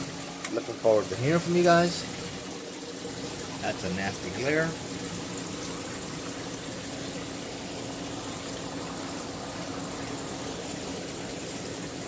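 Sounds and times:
circulating water rushing: 0:00.0 - 0:12.0
faint low pump hum: 0:00.0 - 0:12.0.

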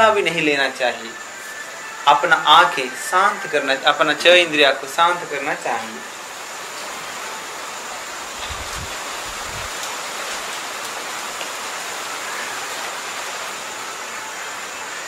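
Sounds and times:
faint thin high whine: 0:00.0 - 0:15.0
steady background hiss: 0:00.0 - 0:15.0.

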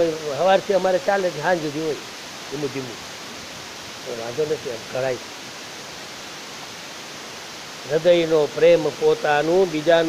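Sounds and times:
room background hiss: 0:00.0 - 0:10.0.

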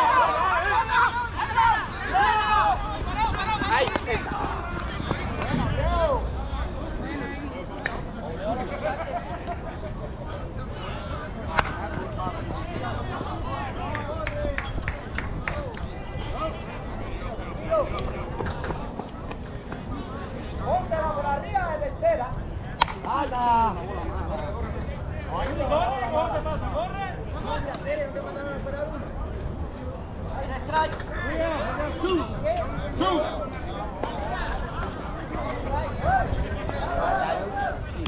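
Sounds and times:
players shouting: 0:00.0 - 0:07.8, 0:31.0 - 0:38.0
low outdoor rumble: 0:00.0 - 0:38.0.

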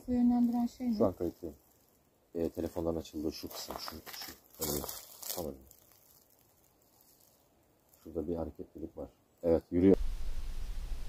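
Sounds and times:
faint outdoor ambience: 0:00.0 - 0:11.0.

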